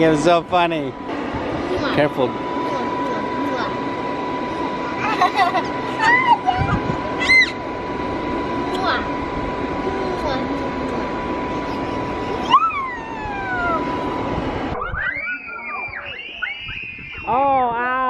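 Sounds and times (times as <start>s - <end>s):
electric blower whirring: 0.0s - 14.9s
child squealing: 6.0s - 7.6s, 12.4s - 13.9s, 14.8s - 16.1s
children shrieking: 6.0s - 7.6s, 12.4s - 13.9s, 14.8s - 17.8s.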